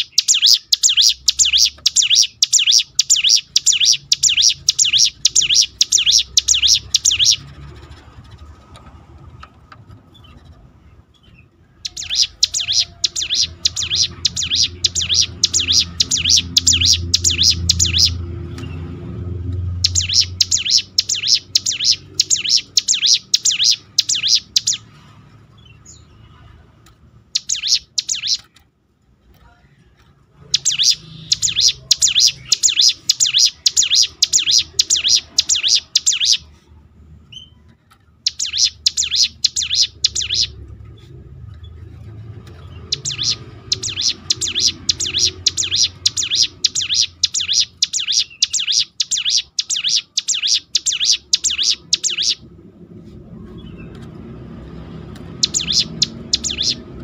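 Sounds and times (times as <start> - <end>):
bird rattling trills: 11.8 - 18.2, 19.8 - 24.8, 55.4 - 56.8.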